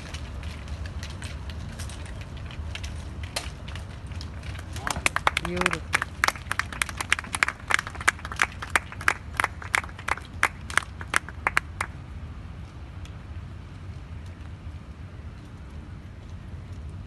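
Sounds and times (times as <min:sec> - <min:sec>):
low steady rumble: 0:00.0 - 0:17.0
sharp claps: 0:04.8 - 0:12.0.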